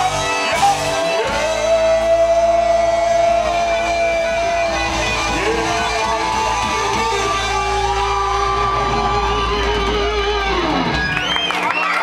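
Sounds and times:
rock band sustained chord: 0.0s - 11.2s.

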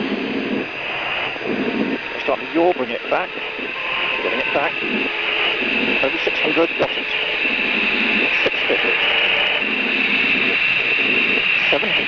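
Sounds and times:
jet engines rushing over radio: 0.0s - 12.0s
short bursts of lower noise: 0.0s - 12.0s.

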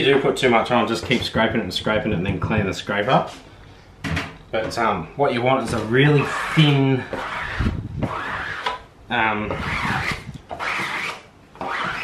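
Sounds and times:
squeegee scraping across mesh: 5.6s - 8.9s, 9.6s - 12.0s.

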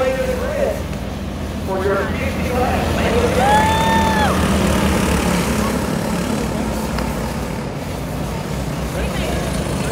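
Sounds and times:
go-kart engines racing: 0.0s - 9.9s.

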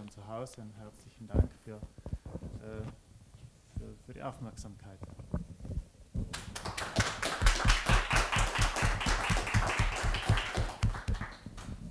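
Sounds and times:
audience applauding: 6.4s - 11.9s.

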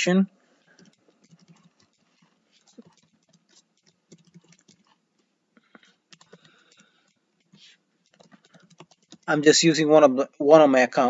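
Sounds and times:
faint keyboard typing: 0.6s - 9.6s.

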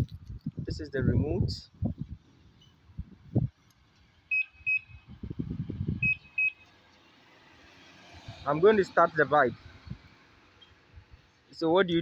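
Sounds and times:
motorcycle alarm beeps: 4.3s - 5.1s, 6.0s - 6.7s.

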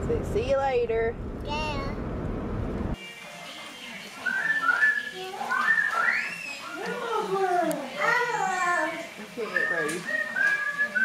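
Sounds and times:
person whistling short high notes: 9.6s - 11.0s.

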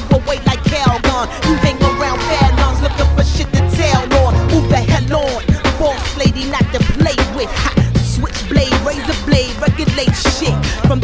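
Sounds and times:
rapping over a beat: 0.0s - 11.0s.

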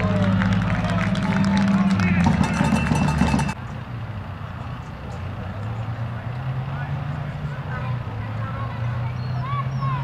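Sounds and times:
distant players calling: 6.6s - 10.0s.

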